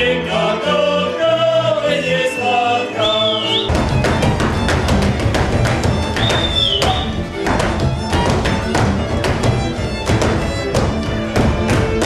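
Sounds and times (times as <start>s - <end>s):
men singing: 0.0s - 3.7s
fiddle and cimbalom dance tune: 2.5s - 12.0s
boots stamping: 3.7s - 12.0s.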